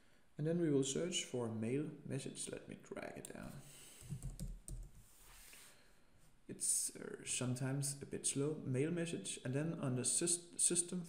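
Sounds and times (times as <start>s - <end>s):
faint keyboard typing: 3.2s - 5.1s.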